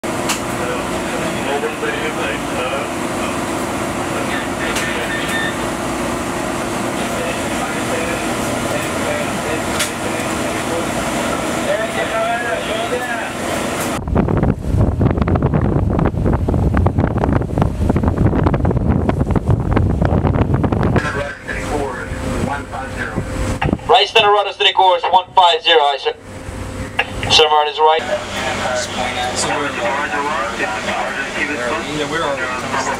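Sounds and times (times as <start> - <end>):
ventilation and machinery hum: 0.0 - 32.9
wind rumble on microphone: 13.9 - 23.9
faint voices: 27.0 - 32.9.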